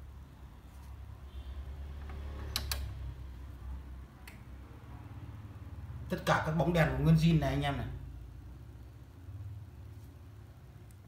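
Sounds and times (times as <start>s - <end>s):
sharp switch clicks: 2.5s - 3.0s.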